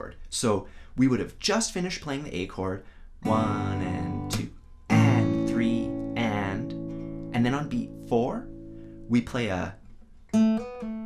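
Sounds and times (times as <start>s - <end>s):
person's voice: 0.0s - 8.5s, 9.1s - 9.8s
acoustic guitar chord strummed: 3.2s - 9.2s, 10.3s - 11.0s.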